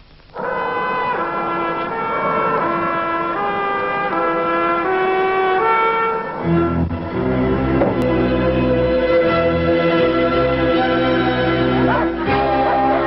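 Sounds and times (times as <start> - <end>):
slow brass melody: 0.3 - 13.0.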